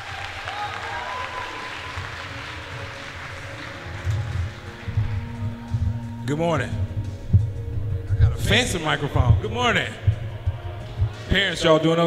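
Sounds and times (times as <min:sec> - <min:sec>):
audience applauding: 0:00.0 - 0:06.3
background music: 0:00.0 - 0:12.0
heavy bass beat: 0:03.4 - 0:11.6.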